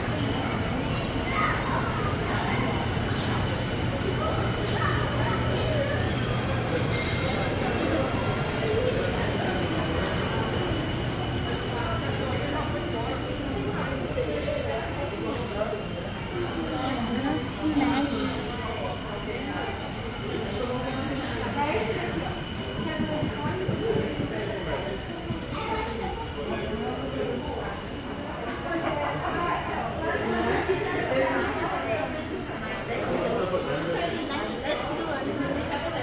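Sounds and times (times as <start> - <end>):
murmur of distant voices: 0.0 - 36.0.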